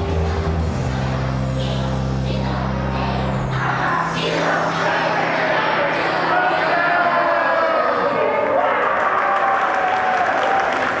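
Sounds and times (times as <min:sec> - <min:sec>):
audience applauding: 0:08.4 - 0:11.0.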